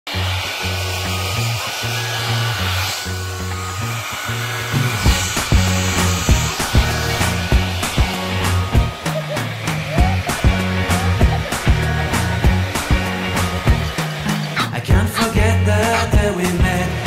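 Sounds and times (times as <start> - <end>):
hair dryer blowing: 0.0 - 17.0
background music with bass line: 3.2 - 17.0
drum beat: 4.8 - 17.0.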